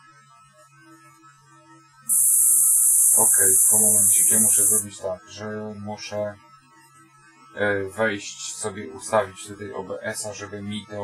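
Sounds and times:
faint steady hum: 2.1s - 5.1s
loud high-pitched radio hiss: 2.1s - 5.2s.

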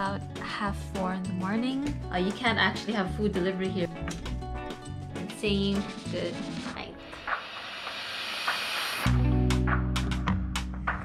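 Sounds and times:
whoosh sound effect: 7.0s - 9.2s.

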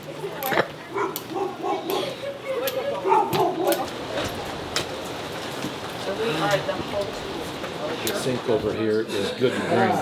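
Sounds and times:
dog yapping: 1.0s - 2.2s, 3.0s - 3.8s.

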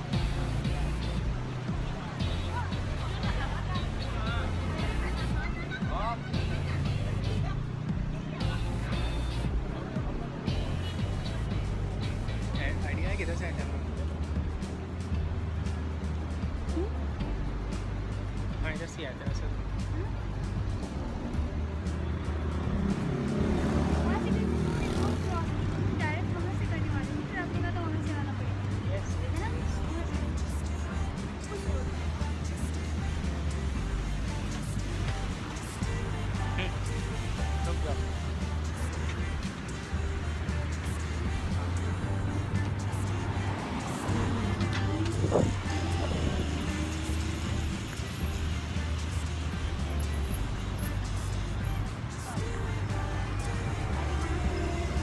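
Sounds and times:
music: 0.0s - 55.0s
traffic rumble: 0.0s - 55.0s
voices: 0.0s - 55.0s
tyres hissing: 28.7s - 55.0s.

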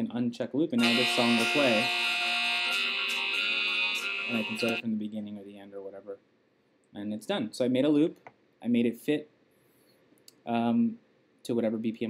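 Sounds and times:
looped electronic song sample: 0.8s - 4.8s.

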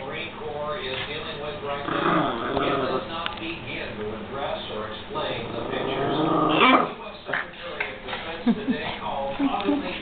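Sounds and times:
small dog growling: 1.7s - 3.1s, 5.4s - 7.0s.

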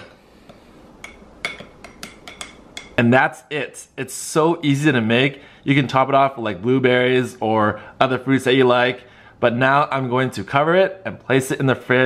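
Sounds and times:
spoon clinking against glass: 1.0s - 3.0s
spoon stirring in glass: 1.0s - 3.0s.

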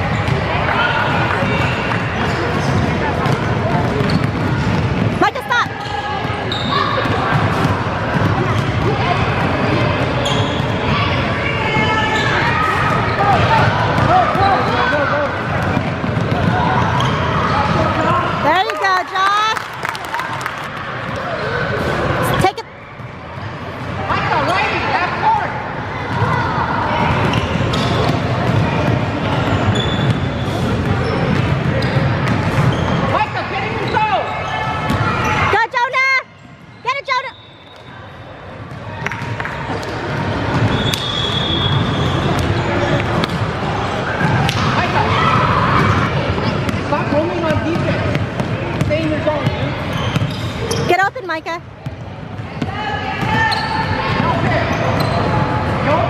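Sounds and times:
basketball bouncing on wooden floor: 3.2s - 5.2s.

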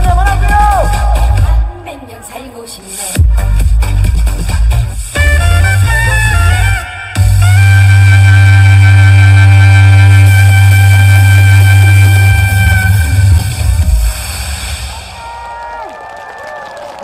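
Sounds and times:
backing track with heavy bass: 0.0s - 15.4s
soprano saxophone high note: 5.2s - 13.9s.

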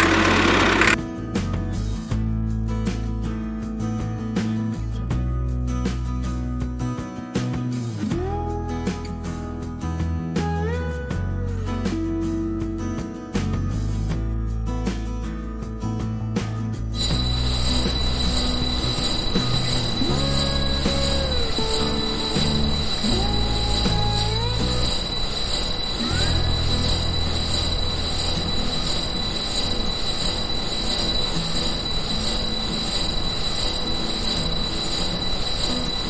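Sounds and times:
high-pitched motor whine: 0.0s - 1.0s, 17.0s - 36.0s
background music: 0.0s - 36.0s.

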